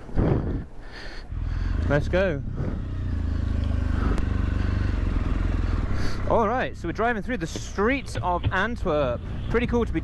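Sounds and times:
motorcycle engine at low revs: 1.3 - 10.0.

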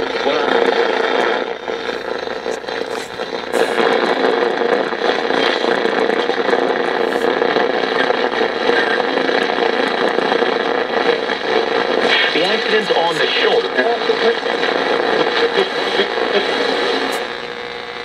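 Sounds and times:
radio crackles: 0.0 - 18.0
radio static hiss: 0.0 - 18.0.

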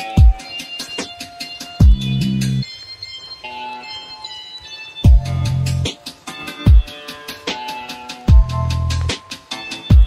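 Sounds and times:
bell-like keyboard chords: 0.0 - 10.0.

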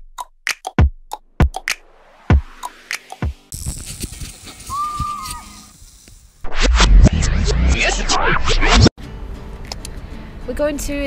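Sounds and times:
high drawn-out squeal: 3.6 - 8.9.

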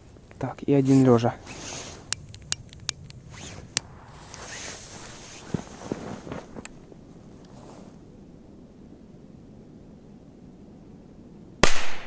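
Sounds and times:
footsteps crunching in snow: 3.3 - 8.0.

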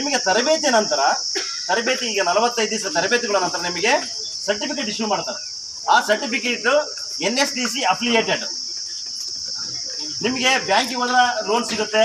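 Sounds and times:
man talking: 0.0 - 8.6, 10.1 - 12.0
high-pitched insect chirring: 0.0 - 12.0.

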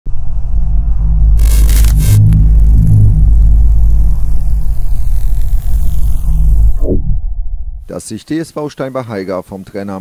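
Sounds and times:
deep bass drone: 0.1 - 7.9
high falling sweep: 0.1 - 8.0
pulsing bass figure: 0.2 - 7.9.

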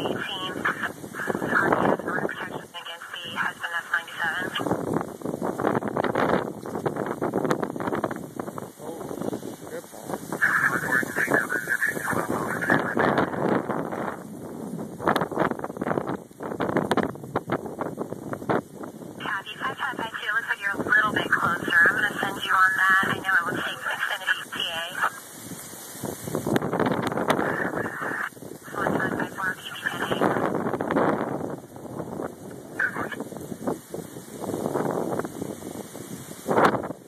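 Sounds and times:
garbled voice over scanner radio: 0.0 - 4.7, 10.4 - 13.5, 19.2 - 25.2, 27.4 - 30.6, 32.7 - 33.2
gusty wind buffeting microphone: 0.0 - 37.0.

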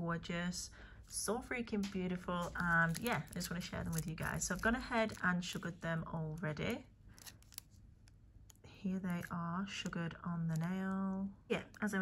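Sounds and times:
woman speaking: 0.0 - 6.9, 8.7 - 12.0
plastic sticks clicking and rustling: 1.8 - 5.7, 7.2 - 9.4.

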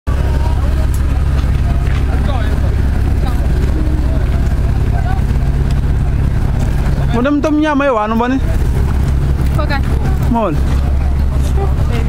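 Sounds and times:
boat engine idling: 0.1 - 12.0.

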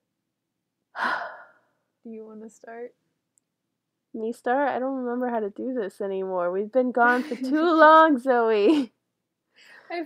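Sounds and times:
woman sighing: 1.0 - 1.6.

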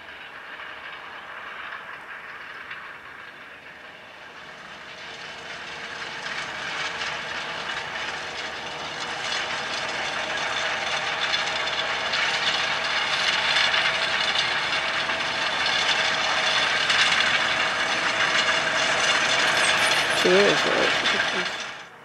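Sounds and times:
tractor diesel engine under load: 0.0 - 22.0
seed drill rattling: 18.2 - 21.8.

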